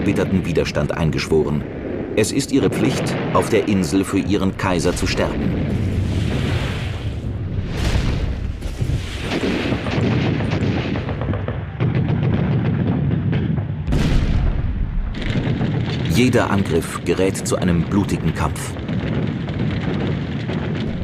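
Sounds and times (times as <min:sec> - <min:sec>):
explosions: 0:00.0 - 0:21.0
sharp blast: 0:01.6 - 0:11.3, 0:13.9 - 0:16.8
gunfire: 0:01.6 - 0:17.0, 0:18.3 - 0:21.0.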